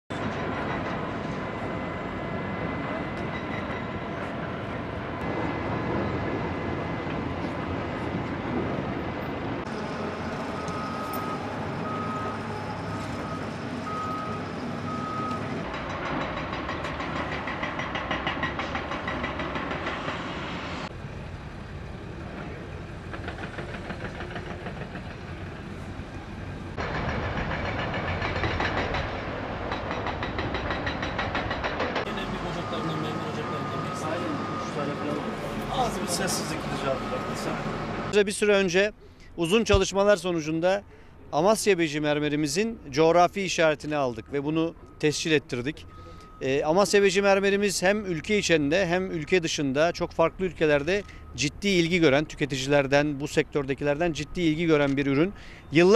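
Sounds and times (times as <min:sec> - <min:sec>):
heavy machinery running: 0:00.1 - 0:38.2
reversing alarm beeping: 0:09.7 - 0:15.6, 0:32.1 - 0:38.2, 0:43.2 - 0:55.9.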